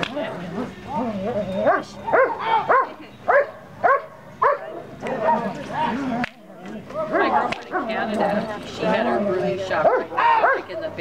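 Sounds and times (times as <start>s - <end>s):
people talking: 0.0s - 3.4s, 4.4s - 11.0s
dog barking: 1.6s - 5.5s, 9.8s - 10.7s.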